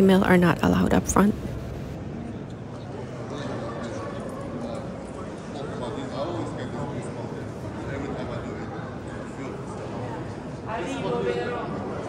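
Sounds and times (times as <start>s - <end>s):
murmur of voices in a hall: 0.0s - 12.0s.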